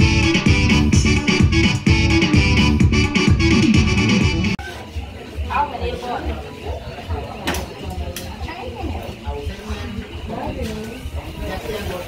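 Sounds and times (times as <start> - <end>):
party music with thumping bass: 0.0 - 4.6.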